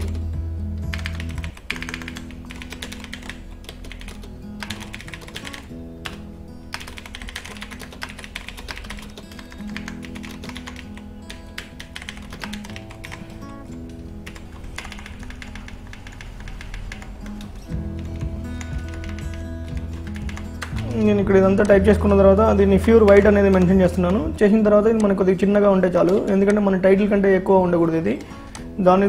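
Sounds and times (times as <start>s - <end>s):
background music with held notes: 0.0s - 29.0s
typing on computer keyboard: 0.9s - 20.8s.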